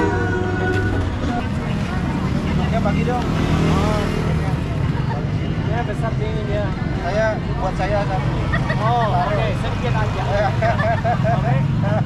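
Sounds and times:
city traffic rumble: 0.0 - 12.0
people talking: 0.0 - 12.0.

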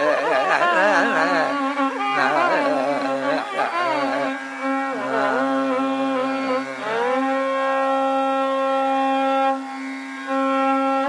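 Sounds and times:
person singing: 0.0 - 7.6
steady drone: 0.0 - 11.0
violin melody: 0.0 - 11.0.

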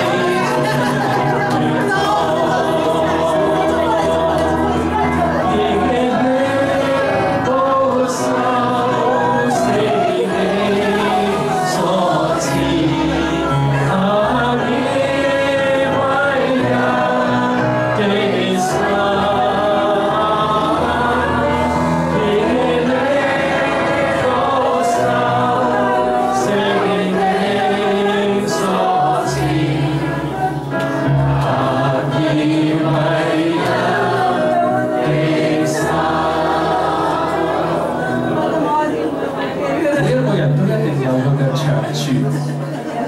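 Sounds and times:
congregation singing a hymn: 0.0 - 43.0
instrumental accompaniment: 0.0 - 43.0
man singing into a microphone: 1.9 - 29.4.

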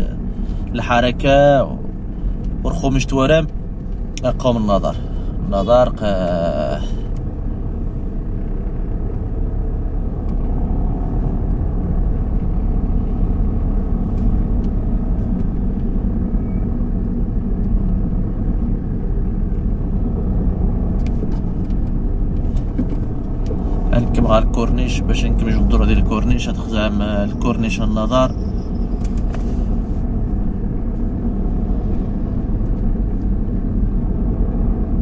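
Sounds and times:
car engine and tyres rumbling: 0.0 - 35.0.

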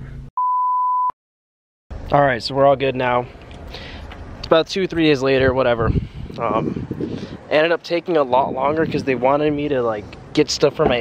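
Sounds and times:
high pure beep: 0.4 - 1.2.

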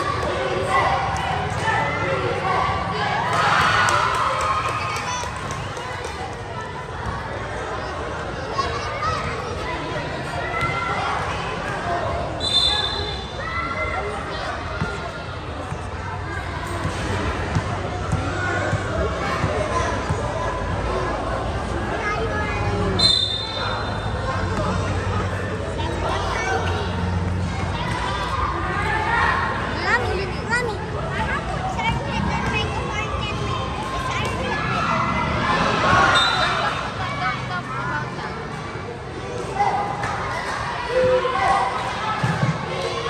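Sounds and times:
chatter and calls of people: 0.0 - 43.0
crowd talking and shouting: 0.0 - 43.0.

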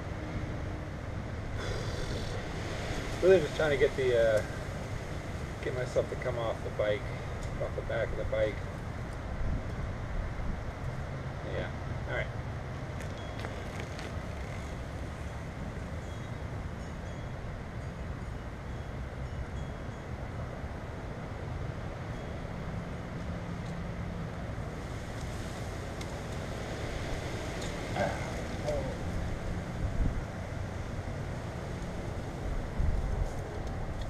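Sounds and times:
even hiss: 1.4 - 8.6.

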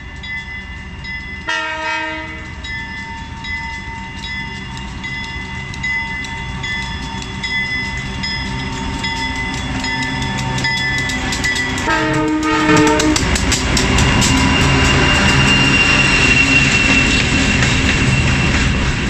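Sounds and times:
locomotive bell ringing: 0.0 - 18.8
diesel locomotive engine rumble: 0.0 - 19.0
locomotive horn blast: 1.5 - 2.5, 11.8 - 13.4.

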